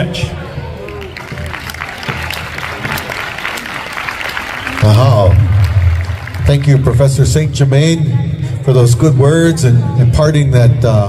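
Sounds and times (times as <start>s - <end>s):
audience applauding: 0.8s - 7.4s.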